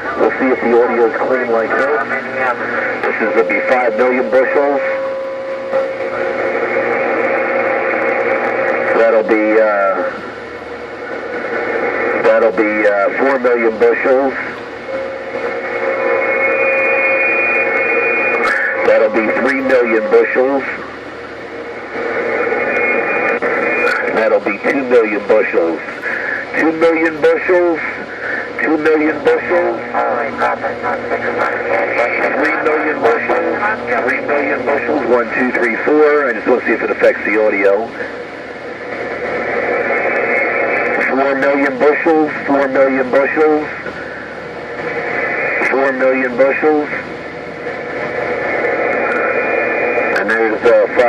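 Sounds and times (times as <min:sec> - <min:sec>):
radio speaker hiss: 0:00.0 - 0:51.0.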